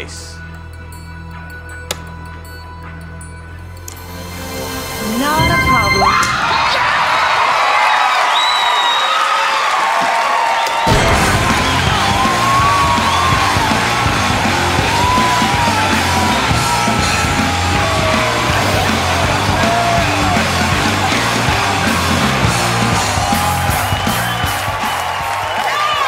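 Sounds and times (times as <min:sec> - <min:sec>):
audience cheering and whooping: 0:05.5 - 0:26.0.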